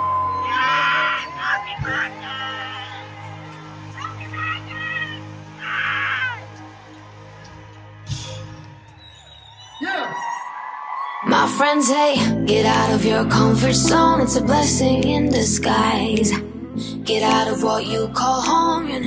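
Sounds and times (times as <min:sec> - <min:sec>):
crowd screaming and cheering: 0:00.0 - 0:12.8
sustained keyboard chords: 0:12.2 - 0:19.0.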